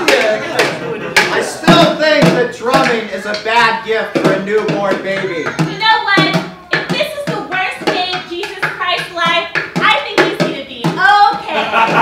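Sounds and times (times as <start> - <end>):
voices vocalizing: 0.0 - 9.5
sticks drumming on plastic bucket: 0.0 - 12.0.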